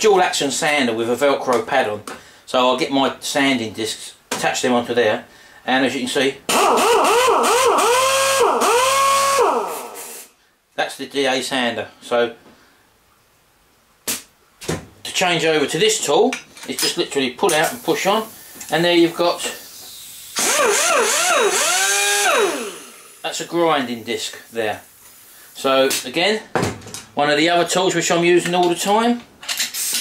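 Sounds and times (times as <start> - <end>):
air sander whining: 6.5 - 10.3, 20.4 - 23.2
hiss of exhaust air: 9.2 - 10.4, 17.7 - 18.8, 19.4 - 20.4.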